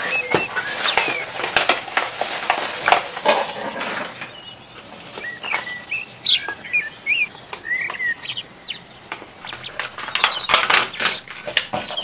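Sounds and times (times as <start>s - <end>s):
plastic packaging crinkling: 0.0s - 4.2s, 9.3s - 12.0s
small birds chirping: 0.0s - 12.0s.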